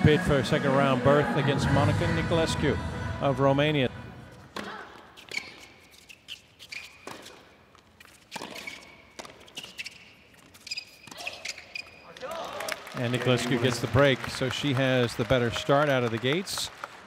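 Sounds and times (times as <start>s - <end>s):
shoes squeaking on court: 4.3s - 12.3s
racket striking tennis ball: 4.5s - 5.6s, 6.9s - 7.6s, 8.3s - 9.5s.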